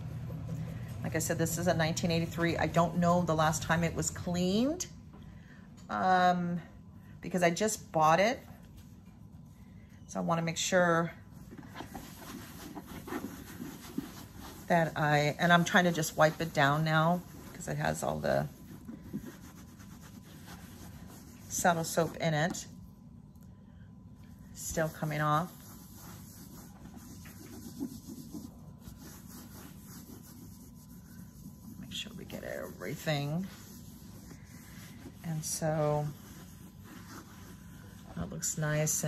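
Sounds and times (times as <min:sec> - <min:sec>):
wipe scuffing over bag: 0:11.8 - 0:22.2, 0:24.7 - 0:38.0.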